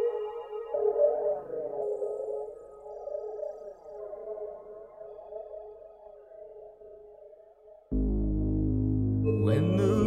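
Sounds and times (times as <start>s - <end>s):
electronic music wavering tones: 7.9s - 10.0s.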